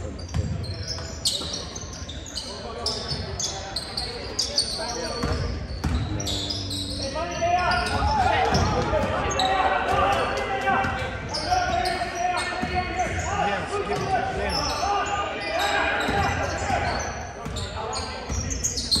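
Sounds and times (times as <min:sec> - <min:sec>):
crowd voices and shouts: 0:00.0 - 0:19.0
sneakers squeaking: 0:00.0 - 0:19.0
basketball bouncing on court: 0:05.2 - 0:06.7, 0:07.7 - 0:10.2, 0:16.0 - 0:19.0.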